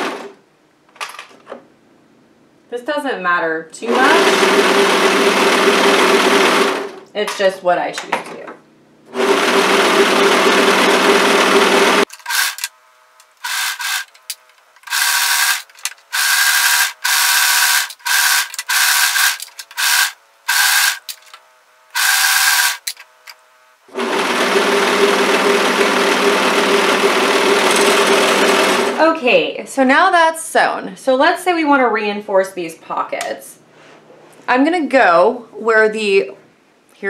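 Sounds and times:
overlocker sewing machine stitching: 3.9 - 7.0, 9.1 - 12.7, 13.4 - 14.2, 14.8 - 21.1, 22.0 - 23.0, 23.9 - 29.0.

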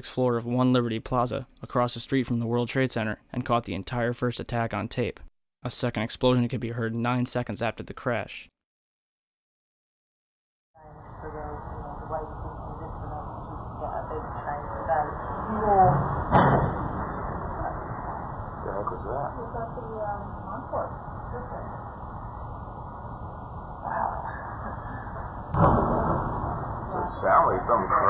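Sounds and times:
voices in a room: 10.8 - 28.0
long explosion boom: 13.1 - 28.0
sudden loud bang: 15.7 - 19.0, 24.8 - 28.0.

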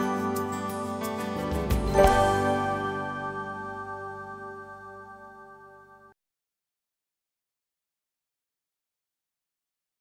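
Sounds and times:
closing music: 0.0 - 6.2.

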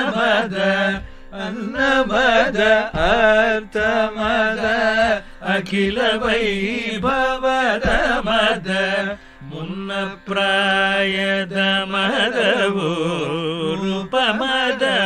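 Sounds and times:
person singing devotional song: 0.0 - 15.0.

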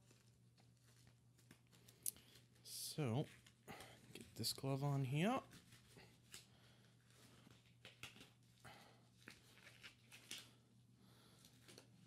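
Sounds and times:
glove rustling and snapping: 7.1 - 8.6, 9.2 - 10.6.

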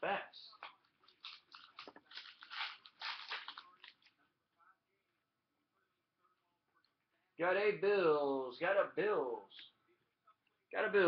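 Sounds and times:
packaging crinkling and tearing: 1.0 - 4.1.

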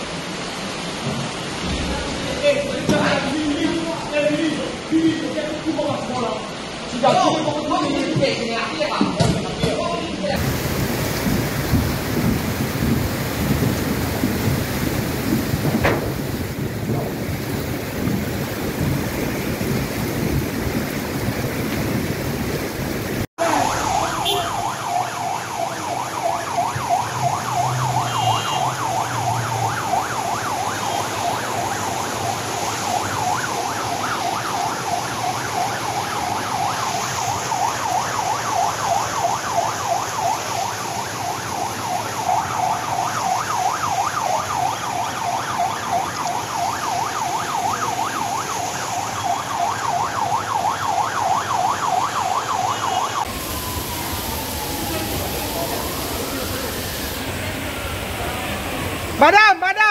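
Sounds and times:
floodwater rushing: 0.0 - 59.9
rain falling: 0.0 - 59.9
siren wailing: 23.4 - 59.9.

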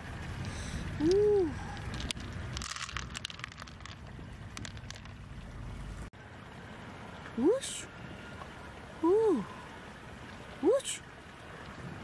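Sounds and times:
wind rumble on microphone: 11.5 - 12.0.

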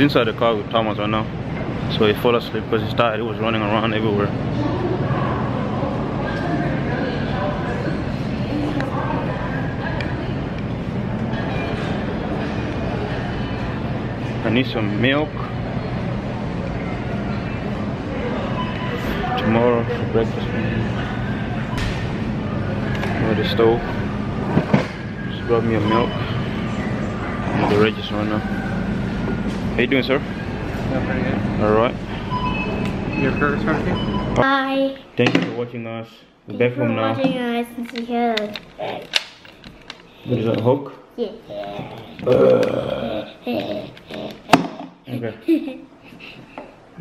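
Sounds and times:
murmured voices: 0.0 - 34.4, 41.5 - 45.4
ventilation rumble and hum: 0.0 - 47.0.

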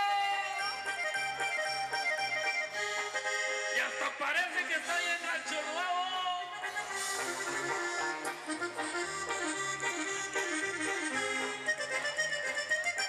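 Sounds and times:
accordion runs: 0.4 - 13.0
live dance band: 4.8 - 13.0.

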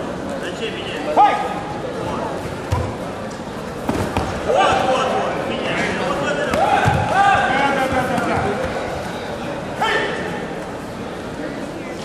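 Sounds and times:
hall chatter: 0.0 - 12.0.

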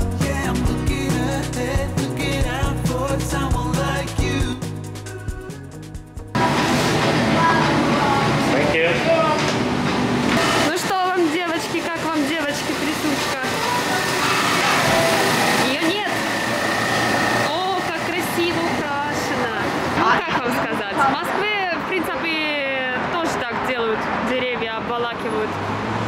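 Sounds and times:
indistinct voices talking: 10.6 - 25.5.

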